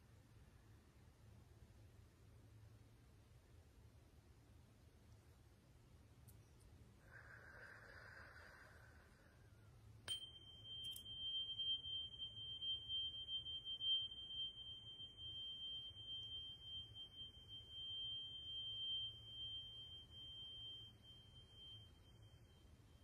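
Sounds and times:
small metal chime ringing: 0:10.0 - 0:22.7.

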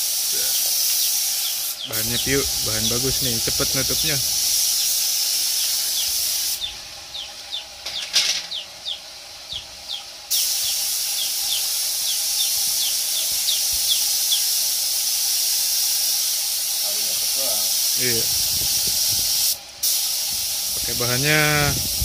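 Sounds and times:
spray gun hissing: 0:00.0 - 0:07.8, 0:08.5 - 0:22.0.

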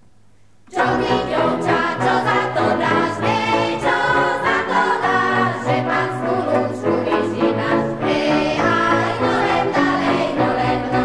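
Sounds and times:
girls' choir singing: 0:00.7 - 0:11.0.

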